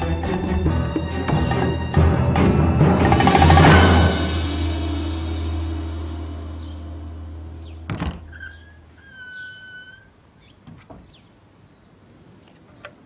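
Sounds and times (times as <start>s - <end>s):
wooden thud: 7.9s - 8.5s
door hinge squeaking: 7.9s - 11.2s.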